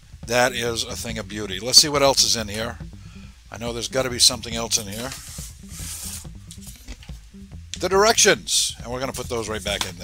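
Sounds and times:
paper and cardboard rustling: 0:04.9 - 0:07.2.

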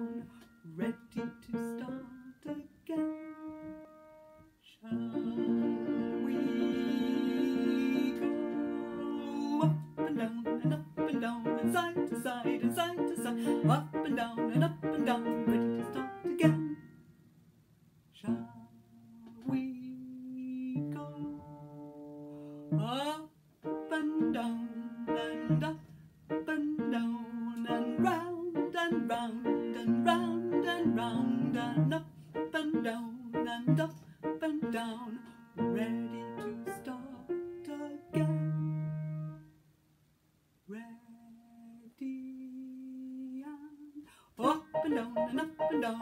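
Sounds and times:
woman singing: 0:00.0 - 0:03.9, 0:04.6 - 0:16.8, 0:18.2 - 0:21.7, 0:22.6 - 0:38.9, 0:40.7 - 0:46.0.

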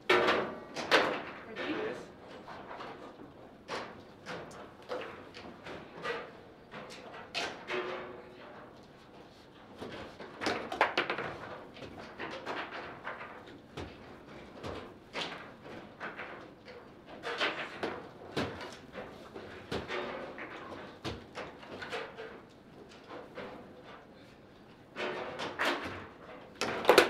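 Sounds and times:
table football clacks and knocks: 0:08.8 - 0:27.0.

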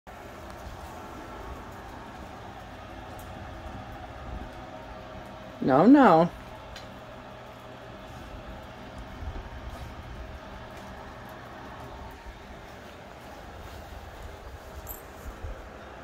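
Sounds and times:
wind rumble: 0:00.1 - 0:05.6, 0:06.3 - 0:16.0.

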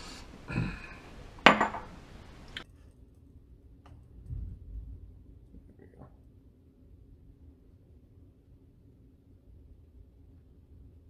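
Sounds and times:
bottle clacking on stone counter: 0:01.4 - 0:01.9.

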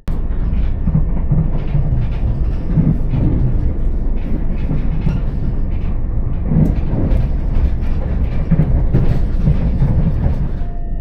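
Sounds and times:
train running rumble: 0:00.0 - 0:11.0
wheels clicking over track: 0:00.1 - 0:11.0.

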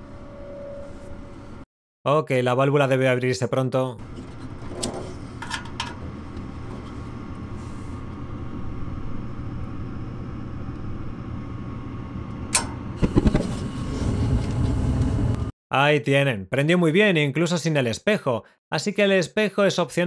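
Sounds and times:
burner rumble: 0:04.0 - 0:15.5
furnace motor hum: 0:04.0 - 0:15.5
gas valve click: 0:12.5 - 0:12.8.

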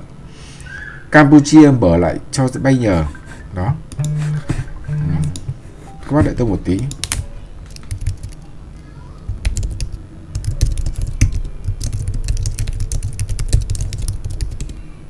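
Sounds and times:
keyboard key clicks: 0:06.8 - 0:08.4.

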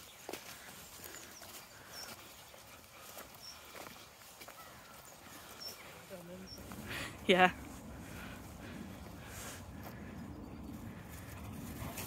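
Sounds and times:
footsteps on muddy path: 0:00.0 - 0:12.0.

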